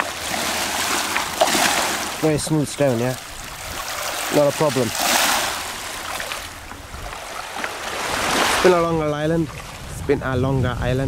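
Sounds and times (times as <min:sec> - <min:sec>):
waves washing over pebbles: 0:00.0 - 0:10.0.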